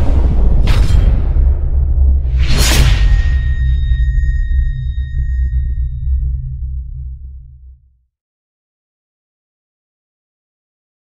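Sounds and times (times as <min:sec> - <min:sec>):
deep sub-bass rumble: 0:00.0 - 0:08.0
high ringing tone: 0:02.9 - 0:06.9.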